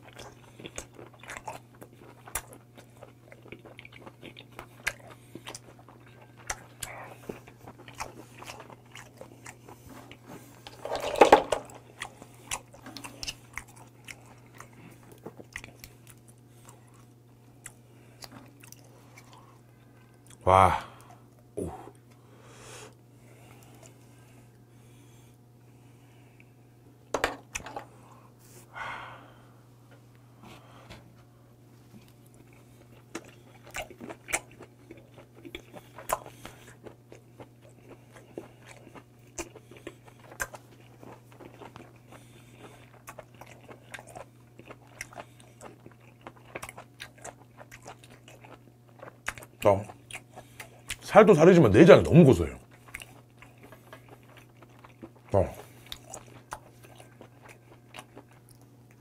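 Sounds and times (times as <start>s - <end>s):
steady low hum: 0.0s - 59.0s
wet chewing mouth clicks: 32.1s - 51.0s, 52.6s - 59.0s.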